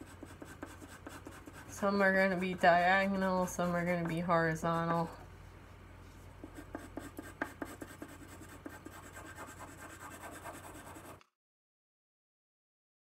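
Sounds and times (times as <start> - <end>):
pencil scratching on paper: 0.0 - 5.1, 6.4 - 11.2.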